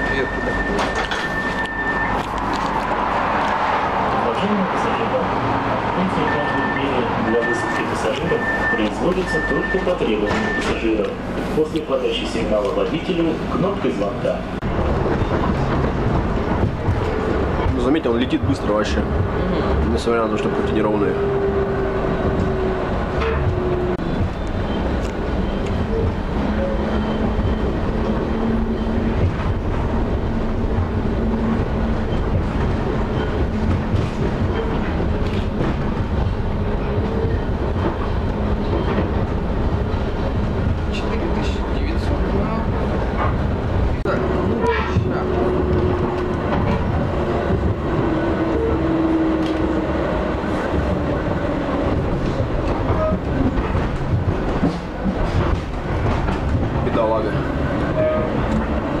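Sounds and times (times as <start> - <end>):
tram wheels rumbling on rail: 0.0 - 59.0.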